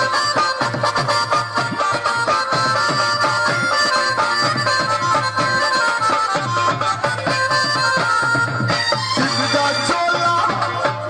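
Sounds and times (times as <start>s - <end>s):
reedy melody: 0.0s - 11.0s
steady drum beat: 0.0s - 11.0s.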